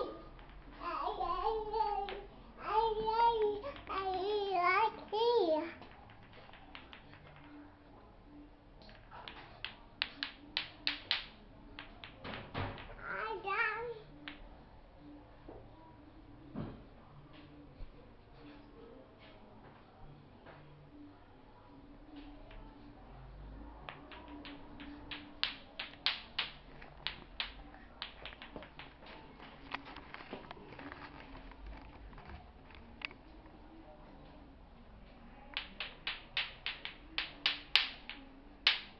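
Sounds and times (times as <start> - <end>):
clacker toy balls clacking: 5.8 - 7.5, 9.2 - 13.0, 23.9 - 29.2, 35.6 - 38.9.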